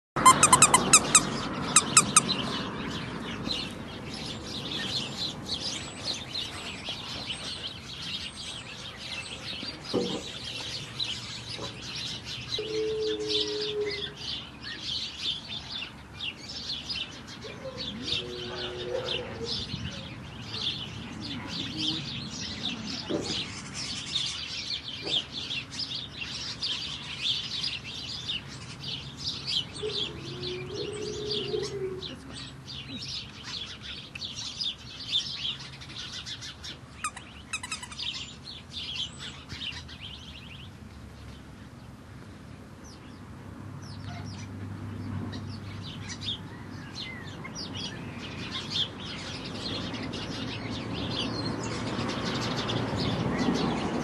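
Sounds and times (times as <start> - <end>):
small birds chirping: 0.2 - 54.0.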